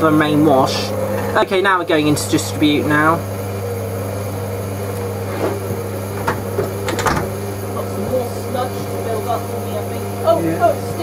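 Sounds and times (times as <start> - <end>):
washing machine motor humming: 0.0 - 11.0
washing machine drum knocks: 6.1 - 7.6.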